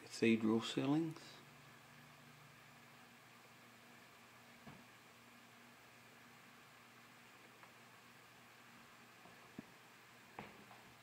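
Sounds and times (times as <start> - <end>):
faint hiss: 0.0 - 11.0
faint low hum: 0.0 - 11.0.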